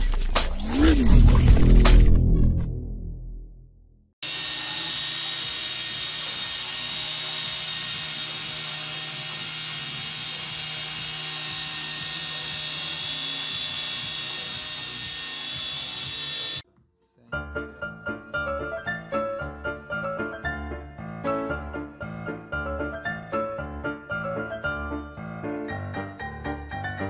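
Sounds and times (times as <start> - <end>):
quadcopter motors whining: 4.2 - 16.6.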